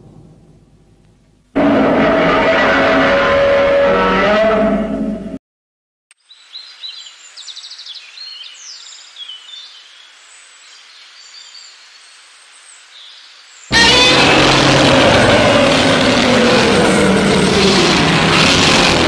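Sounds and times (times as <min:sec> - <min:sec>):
sudden loud dense sound: 0:00.0 - 0:03.3, 0:13.7 - 0:19.0.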